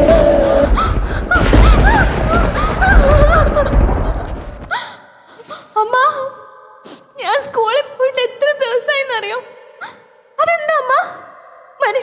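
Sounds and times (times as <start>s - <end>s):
girl crying and sobbing: 0.0s - 6.4s.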